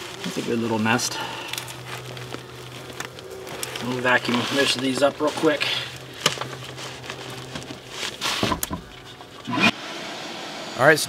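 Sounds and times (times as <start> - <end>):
papery nest crackling: 0.0 - 9.5
low hum: 0.0 - 10.9.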